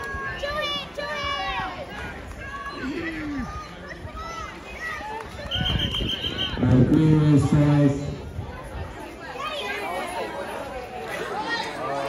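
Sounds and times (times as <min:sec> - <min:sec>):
people chattering: 0:00.0 - 0:12.0
whistle blast: 0:05.5 - 0:06.6.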